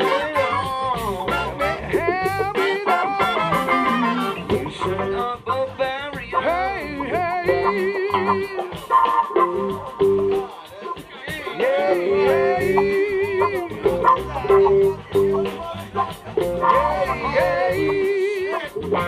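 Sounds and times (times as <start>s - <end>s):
bass: 0.0s - 10.5s, 11.6s - 19.0s
saxophones: 0.0s - 10.5s, 11.6s - 19.0s
electric guitar: 0.0s - 19.0s
keyboard: 0.0s - 19.0s
steady drum beat: 0.0s - 19.0s.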